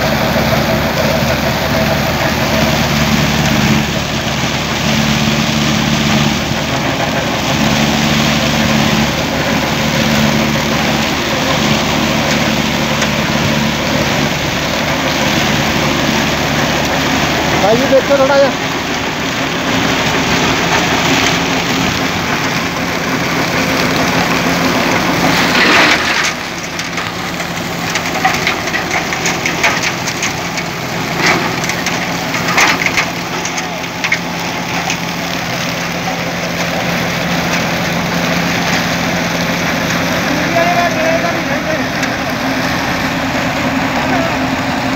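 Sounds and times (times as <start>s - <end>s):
diesel tractor engine under load: 0.0s - 44.9s
straw crunching and crackling: 0.1s - 44.9s.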